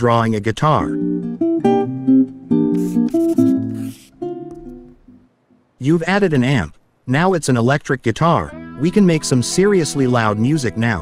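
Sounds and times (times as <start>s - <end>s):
acoustic guitar plucked melody: 1.0s - 5.3s.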